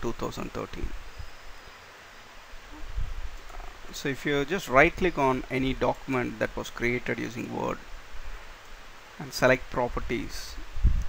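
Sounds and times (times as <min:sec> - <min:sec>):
microphone rumble and hiss: 0:00.0 - 0:11.0
person speaking: 0:03.5 - 0:07.8, 0:09.2 - 0:10.6.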